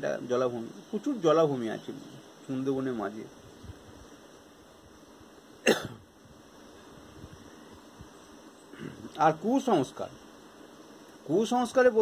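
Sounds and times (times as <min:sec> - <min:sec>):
person coughing: 0:05.6 - 0:06.0.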